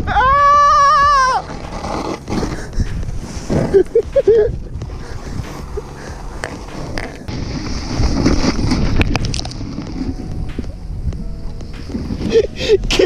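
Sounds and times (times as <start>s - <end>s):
faint background music: 0.0s - 13.0s
wind buffeting microphone: 0.0s - 13.0s
knocks and rustles of snow: 1.4s - 10.8s.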